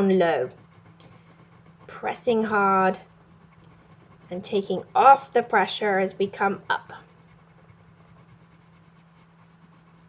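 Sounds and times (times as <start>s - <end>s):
colored pencil scratching on paper: 0.0s - 10.0s
low steady hum: 0.0s - 10.0s.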